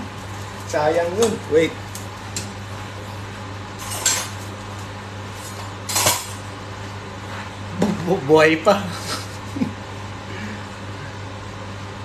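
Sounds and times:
steady low hum: 0:00.0 - 0:12.0
cutlery and cookware clattering: 0:03.8 - 0:04.4, 0:05.9 - 0:06.4.

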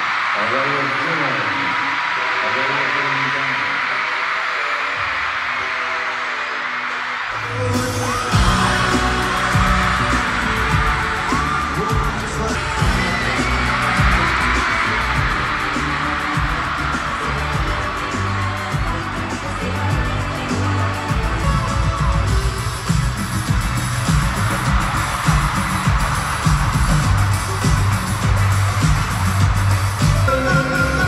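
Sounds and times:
crowd screaming and cheering: 0:00.0 - 0:31.0
live pop band playing: 0:07.4 - 0:31.0.

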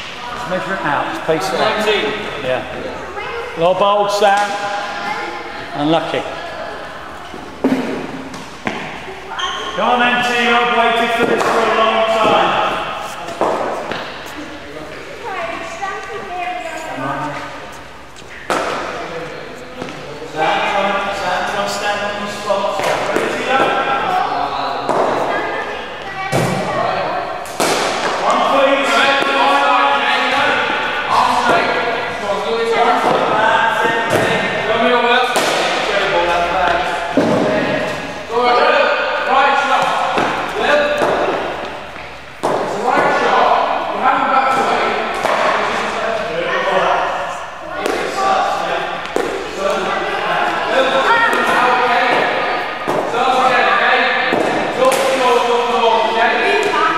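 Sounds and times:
indistinct chatter echoing: 0:00.0 - 0:56.9.

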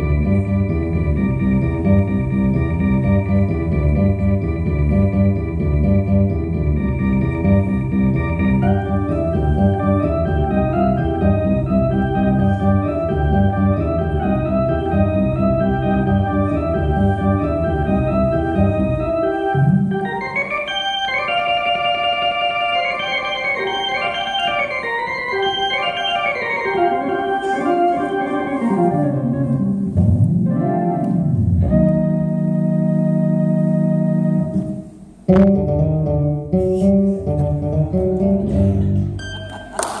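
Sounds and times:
electronic keyboard with organ voice: 0:00.0 - 0:34.8.

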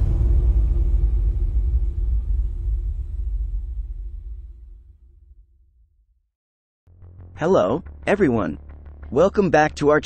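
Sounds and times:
deep rumbling bass: 0:00.0 - 0:06.2.

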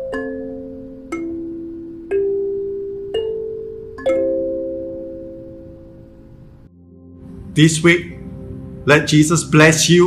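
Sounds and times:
kalimba plucked chords: 0:00.0 - 0:06.1.

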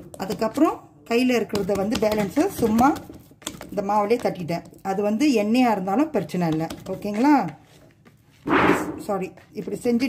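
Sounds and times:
hand pressing dough in bowl: 0:00.0 - 0:07.7
woman talking: 0:00.2 - 0:03.1, 0:03.7 - 0:07.6, 0:09.0 - 0:10.0.

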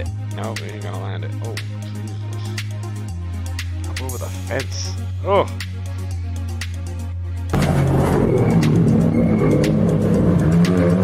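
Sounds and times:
music: 0:00.0 - 0:11.0
car engine revving: 0:07.5 - 0:11.0.

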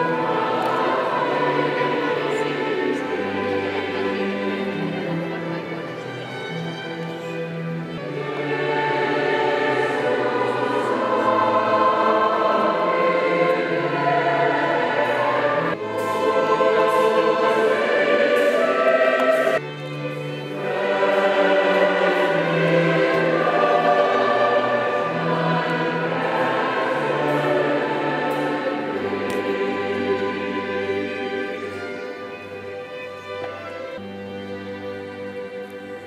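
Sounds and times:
choir singing sacred music: 0:00.0 - 0:36.0.

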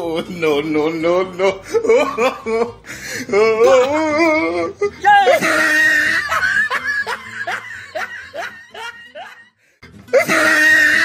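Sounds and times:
person laughing loudly: 0:01.4 - 0:11.0.

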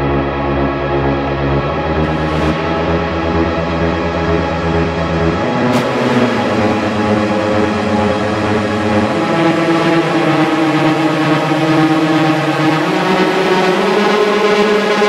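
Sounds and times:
droning synthesizer chords: 0:00.0 - 0:15.0.

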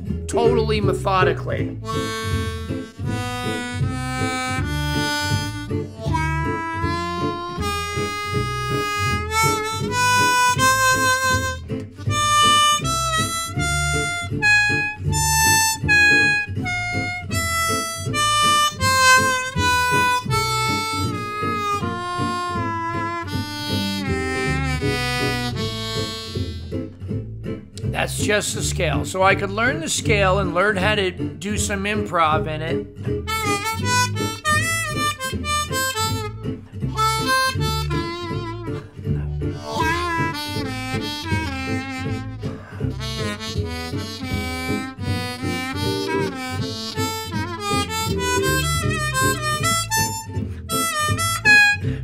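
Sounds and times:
harmonica playing a scale: 0:01.2 - 0:27.0, 0:33.2 - 0:52.0.

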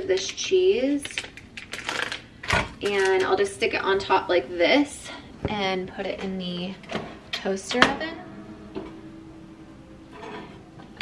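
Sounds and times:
plastic packaging crinkling: 0:01.0 - 0:03.3.

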